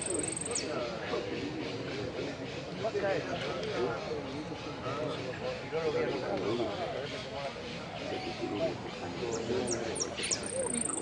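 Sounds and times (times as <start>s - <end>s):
indistinct voices talking: 0.0s - 11.0s.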